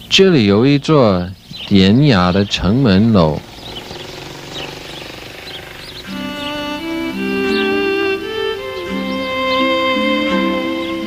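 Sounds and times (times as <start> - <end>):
bird chirps: 0.0 - 11.0
low street hum: 0.0 - 11.0
motorcycle engine passing: 2.6 - 11.0.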